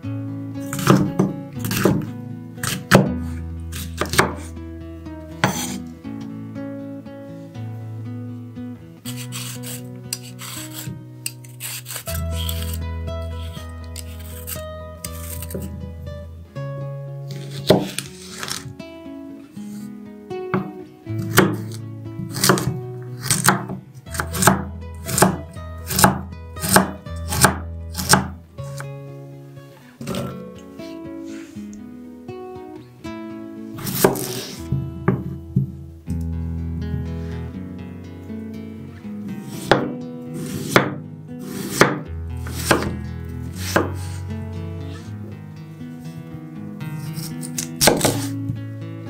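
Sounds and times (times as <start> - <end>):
soft guitar music: 0.0 - 49.0
knife chopping on wooden board: 0.7 - 4.5, 5.4 - 5.8, 9.1 - 12.8, 13.4 - 15.7, 17.5 - 18.6, 21.3 - 28.3, 33.8 - 35.2, 39.5 - 43.0, 43.6 - 44.2, 47.1 - 48.4.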